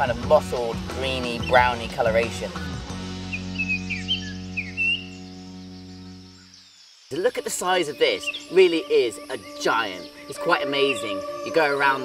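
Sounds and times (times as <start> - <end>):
bird chirps: 3.2 - 12.0
held music chord: 7.6 - 12.0.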